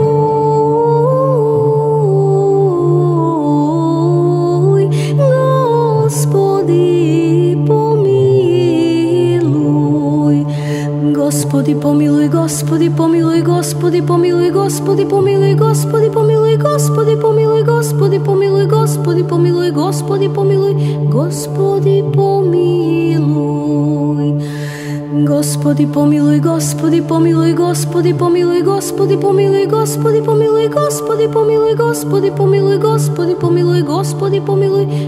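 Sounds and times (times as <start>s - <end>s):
low held drone: 0.0s - 35.0s
woman singing church chant: 0.0s - 35.0s.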